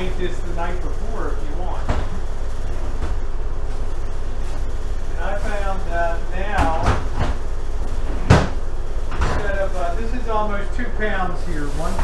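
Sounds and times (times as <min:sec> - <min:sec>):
steady low hum: 0:00.0 - 0:12.0
refrigerator door shutting: 0:06.4 - 0:07.4, 0:08.1 - 0:09.7.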